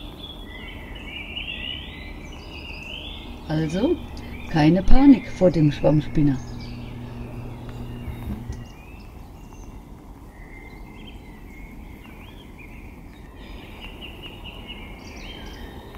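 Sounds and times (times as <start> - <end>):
birds chirping: 0.7 - 9.7
low steady hum: 3.1 - 8.8.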